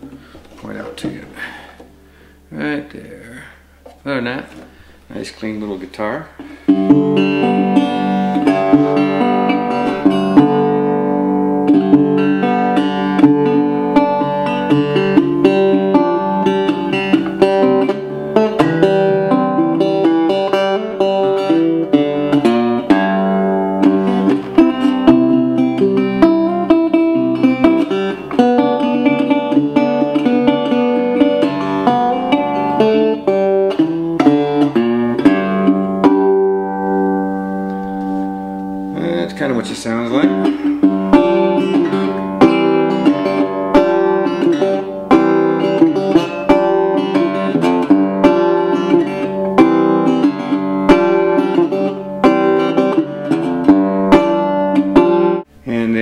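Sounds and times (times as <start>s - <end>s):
resonator guitar picked notes and chords: 6.4s - 55.6s.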